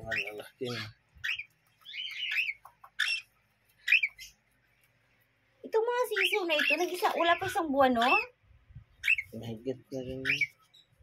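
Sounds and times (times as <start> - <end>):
young birds chirping: 0.0 - 11.0.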